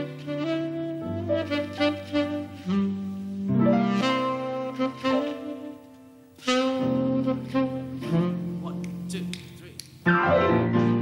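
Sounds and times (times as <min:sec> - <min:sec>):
tenor saxophone jazz line: 0:00.0 - 0:11.0.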